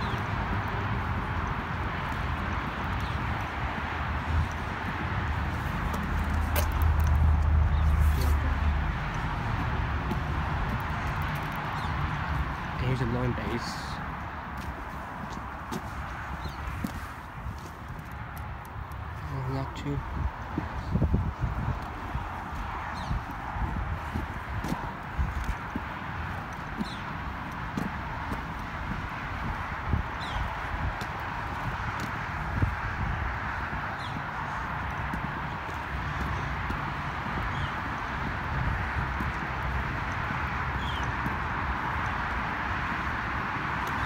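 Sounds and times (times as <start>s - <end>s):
footsteps on concrete: 0.0s - 44.0s
steady outdoor hiss: 0.0s - 44.0s.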